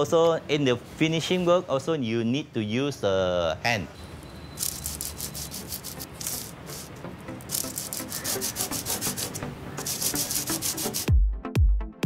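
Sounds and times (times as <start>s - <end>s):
hand sanding wood: 4.9s - 11.1s.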